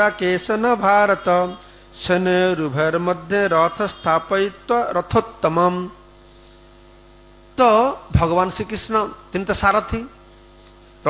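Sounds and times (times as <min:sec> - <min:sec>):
man speaking: 0:00.0 - 0:06.0, 0:07.6 - 0:10.2
electrical hum: 0:00.0 - 0:11.0.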